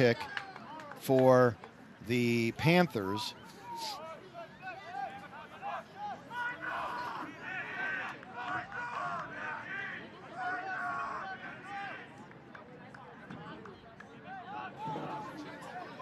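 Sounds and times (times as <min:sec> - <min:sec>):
voices shouting and calling out: 0:00.0 - 0:12.3, 0:13.1 - 0:16.0
low crowd chatter: 0:00.0 - 0:16.0.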